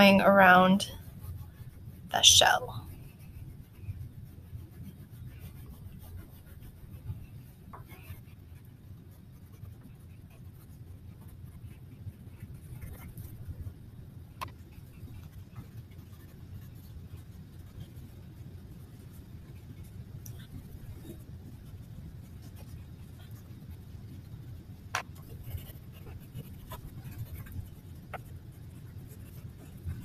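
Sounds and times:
crayon scratching on paper: 0.0 - 30.0.

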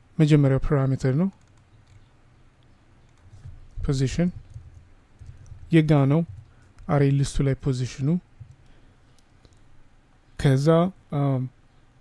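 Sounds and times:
computer keyboard keystrokes: 1.3 - 2.1, 3.0 - 6.9.

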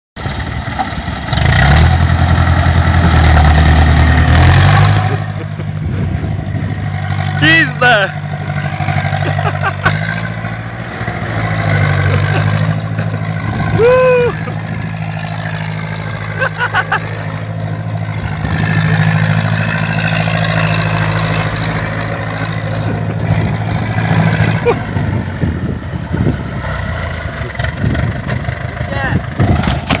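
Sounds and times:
tractor diesel engine running hard: 0.2 - 30.0.

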